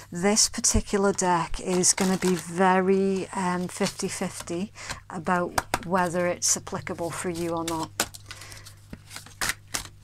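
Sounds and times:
cards shuffled by hand: 1.1 - 4.6, 6.9 - 10.0.

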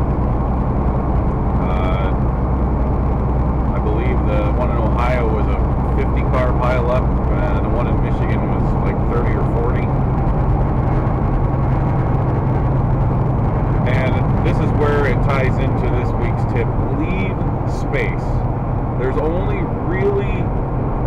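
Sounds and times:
diesel truck engine drone: 0.0 - 21.0
road noise inside cab: 0.0 - 21.0.

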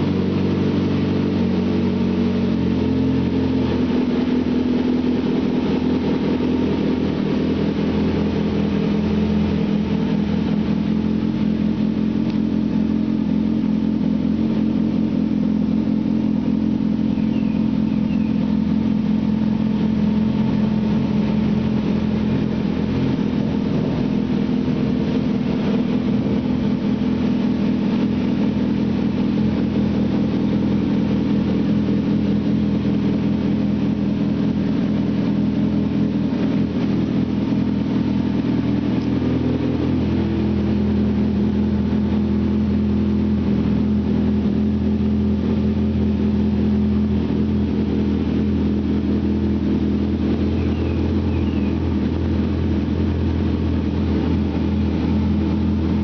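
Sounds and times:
motorcycle engine idling: 0.0 - 56.0.

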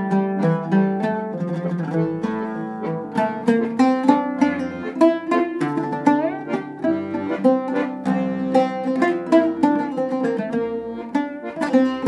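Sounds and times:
accordion chords and melody: 0.0 - 12.0
plucked oud notes: 0.0 - 12.0.

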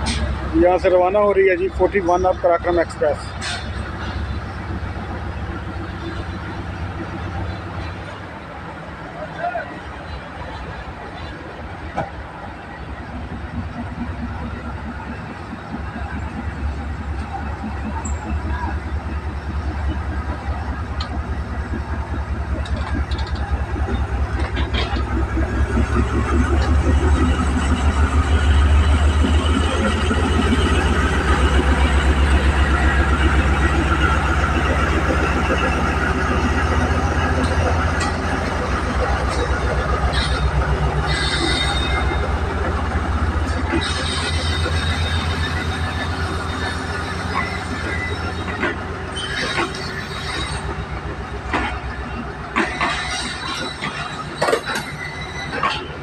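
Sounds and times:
train wheels clicking over rail joints: 0.0 - 0.6, 2.7 - 5.1, 13.5 - 56.0
diesel locomotive engine rumble: 0.0 - 56.0
train wheels squealing: 9.2 - 56.0.

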